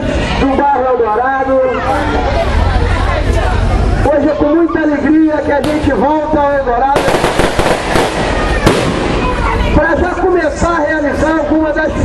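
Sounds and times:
sharp firecracker bangs: 7.0 - 9.7
firecrackers crackling: 7.0 - 9.8.

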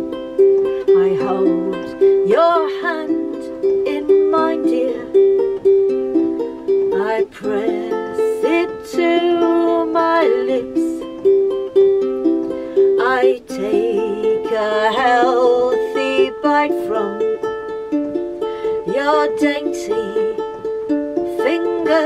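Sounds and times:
person singing: 0.0 - 22.0
ukulele picked melody: 0.0 - 22.0.

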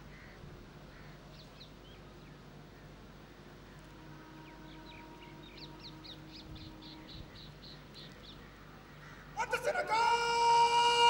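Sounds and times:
low steady hum: 0.0 - 11.0
bird calling in high notes: 3.8 - 8.3.

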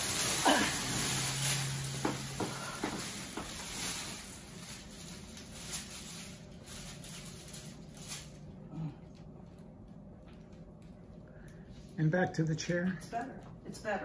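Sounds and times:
plastic sheeting crinkling: 0.0 - 14.0.

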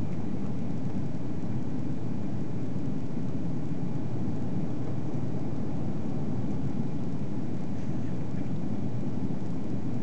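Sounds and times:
airliner cabin engine rumble: 0.0 - 10.0.

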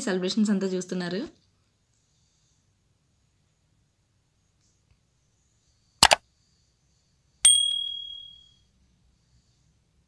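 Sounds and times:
bright bell ding: 7.5 - 8.6.

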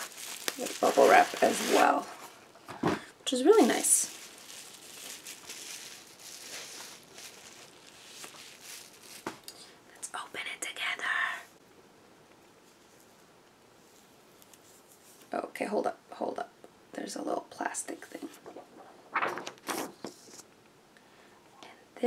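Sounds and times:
bubble wrap rustling: 0.0 - 9.8, 12.6 - 15.4.

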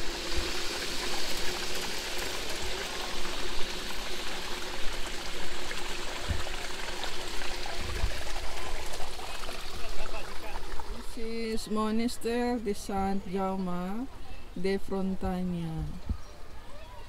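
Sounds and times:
running water rushing: 0.0 - 14.0.

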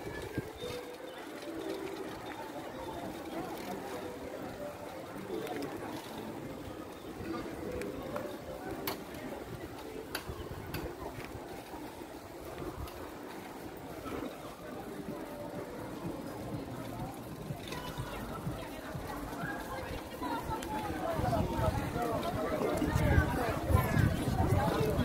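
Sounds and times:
indistinct voices and chatter: 0.0 - 25.0.

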